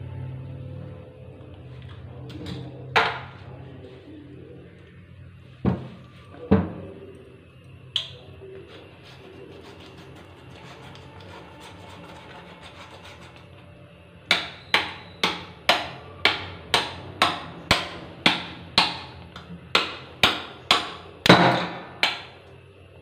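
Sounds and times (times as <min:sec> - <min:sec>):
knife scraping fish scales: 0:08.7 - 0:13.5.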